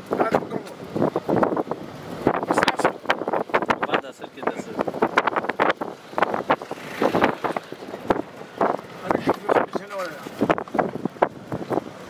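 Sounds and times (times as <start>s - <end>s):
wind buffeting microphone: 0.0s - 12.0s
crackles and knocks: 4.7s - 11.4s.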